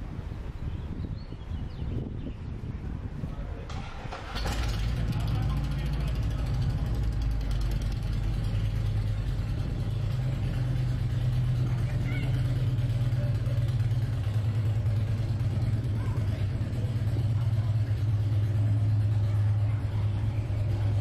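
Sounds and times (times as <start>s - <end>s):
motor vehicle engine drone: 1.7s - 21.0s.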